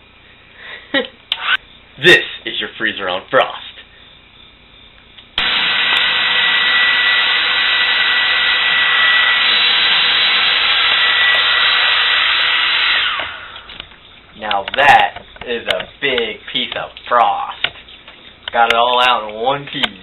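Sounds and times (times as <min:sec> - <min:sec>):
hair dryer running: 0:05.4 - 0:13.7.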